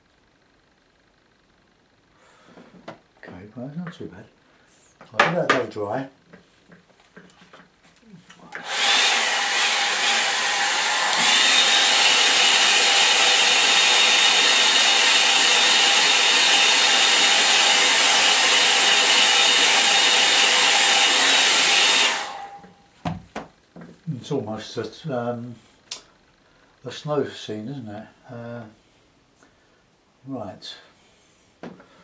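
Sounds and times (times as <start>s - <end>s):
hair dryer thin whine: 8.4s - 22.9s
hair dryer blowing: 8.5s - 22.8s.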